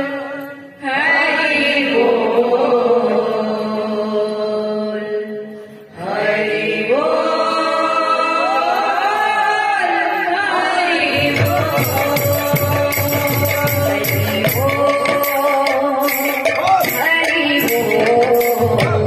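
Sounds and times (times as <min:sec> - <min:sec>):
people chanting in held notes: 0:00.0 - 0:15.4
group singing: 0:00.0 - 0:19.0
barrel drum beat: 0:11.2 - 0:19.0
hand cymbals striking: 0:11.2 - 0:19.0.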